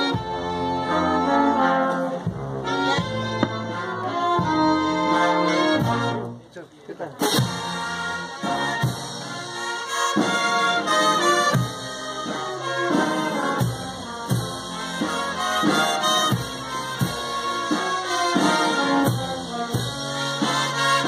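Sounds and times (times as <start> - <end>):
brass band playing: 0.0 - 6.5, 7.1 - 21.0.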